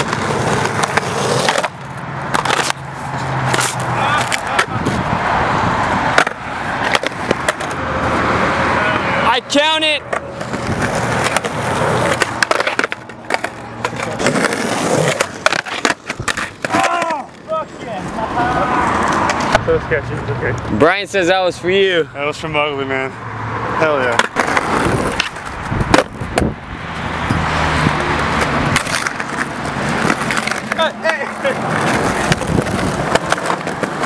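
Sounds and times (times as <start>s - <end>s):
skateboard clacks: 0.0s - 5.0s, 6.1s - 7.8s, 10.1s - 18.1s, 19.0s - 19.6s, 24.1s - 26.5s, 27.9s - 34.0s
skateboard wheels rolling on concrete: 0.0s - 22.6s, 23.4s - 34.0s.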